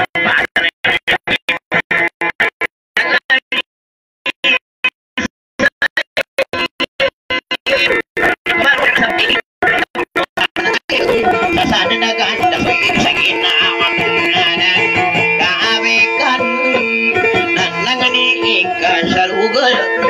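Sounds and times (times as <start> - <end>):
plucked string instrument melody: 10.9 - 20.0.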